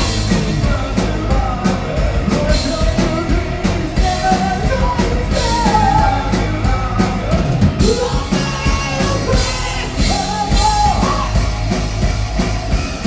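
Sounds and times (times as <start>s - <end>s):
person singing: 0.0s - 11.6s
rock band playing: 0.0s - 13.0s.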